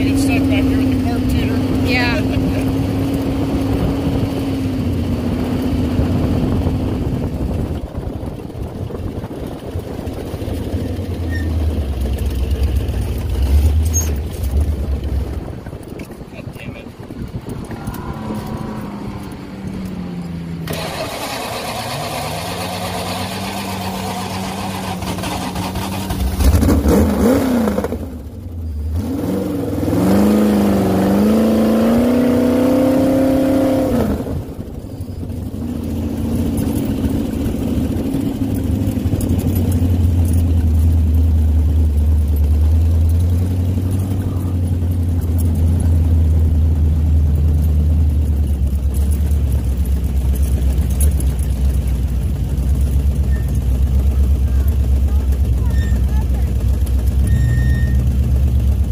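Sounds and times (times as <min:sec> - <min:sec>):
off-road vehicle engine revving: 0:00.0 - 0:58.9.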